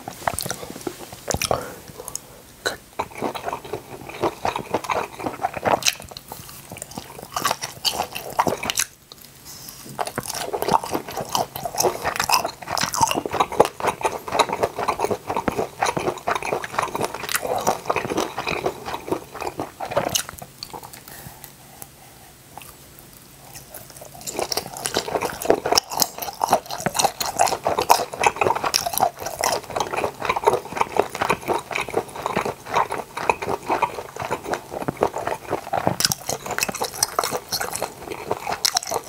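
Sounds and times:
close chewing and biting: 0:00.0 - 0:02.2, 0:03.0 - 0:22.0, 0:22.6 - 0:39.0.

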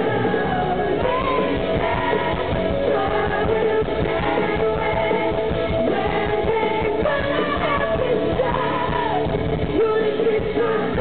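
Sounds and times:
drums: 0:00.0 - 0:11.0
electric guitars: 0:00.0 - 0:11.0
woman singing: 0:00.0 - 0:11.0.

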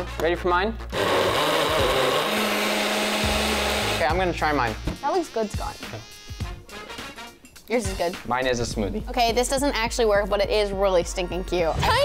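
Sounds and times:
blender whirring: 0:00.9 - 0:04.1.

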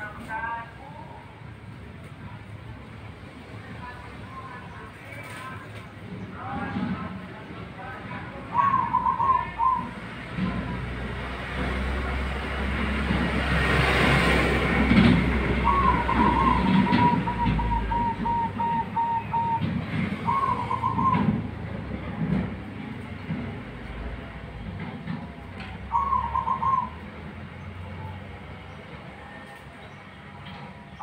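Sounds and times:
dove cooing: 0:08.5 - 0:10.0, 0:15.5 - 0:21.5, 0:25.9 - 0:27.1.

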